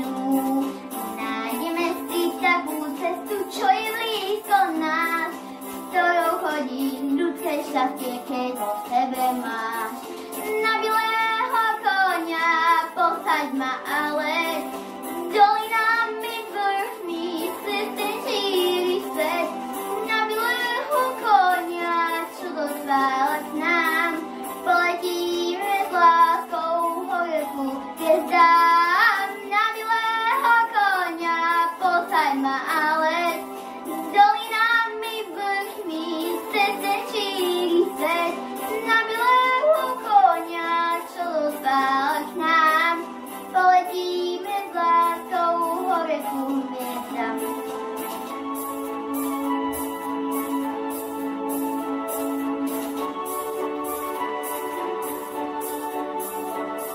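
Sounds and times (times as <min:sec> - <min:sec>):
girl singing into a microphone: 0:00.0 - 0:47.6
instrumental music with steady beat: 0:00.0 - 0:56.9.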